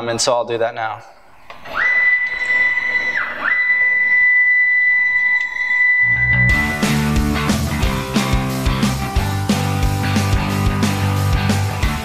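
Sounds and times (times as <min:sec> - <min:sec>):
stepper motors whining: 0:01.5 - 0:06.8
rock music with guitar: 0:06.4 - 0:12.0.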